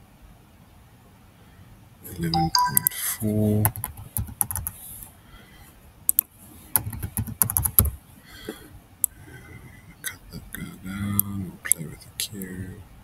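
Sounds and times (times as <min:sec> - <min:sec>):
computer keyboard typing: 0:03.6 - 0:04.8, 0:06.8 - 0:08.0.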